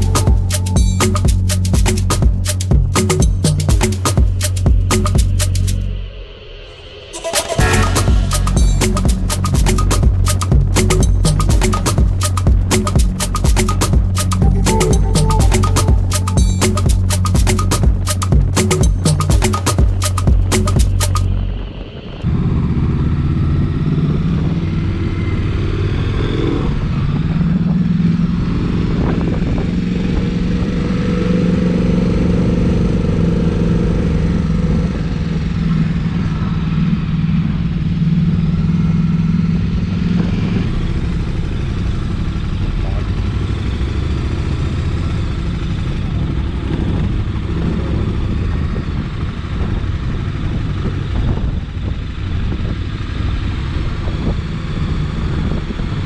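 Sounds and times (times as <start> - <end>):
motorcycle engine running: 0.0 - 5.9, 7.6 - 21.7, 22.3 - 56.0
wind and road noise: 0.0 - 14.5, 15.8 - 56.0.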